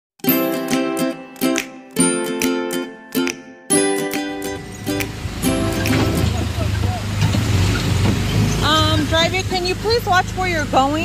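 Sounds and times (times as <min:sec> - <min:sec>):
small gasoline engine drone: 0:04.7 - 0:11.0.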